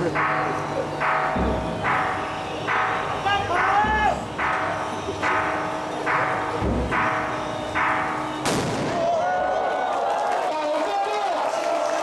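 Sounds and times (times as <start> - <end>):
cannon blast: 8.4 - 9.2.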